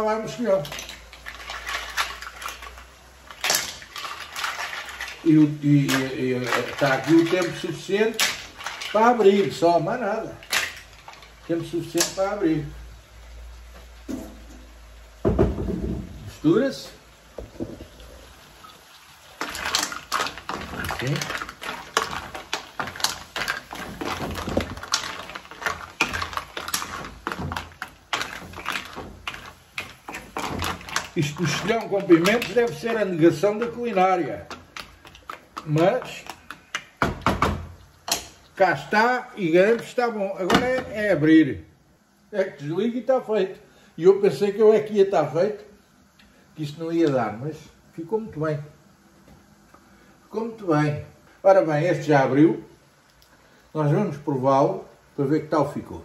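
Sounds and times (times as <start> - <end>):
shells and cookware clicking: 0.6 - 5.2, 10.4 - 11.4, 19.4 - 38.6.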